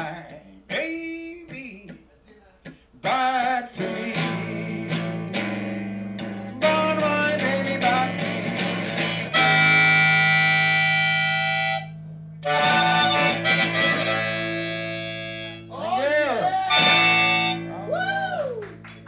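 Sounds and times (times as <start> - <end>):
electric guitar: 2.6 - 15.7, 16.5 - 19.0
blues harmonica: 3.8 - 15.8, 16.6 - 17.9.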